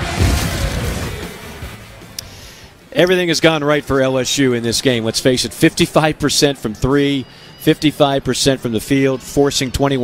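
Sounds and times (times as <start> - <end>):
low boom with whoosh: 0.0 - 1.8.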